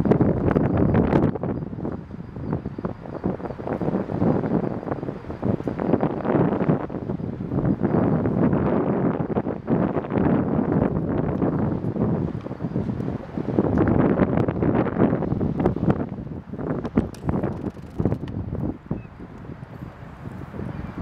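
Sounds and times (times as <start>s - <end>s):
wind buffeting microphone: 0.0s - 21.0s
crackles: 16.8s - 18.4s.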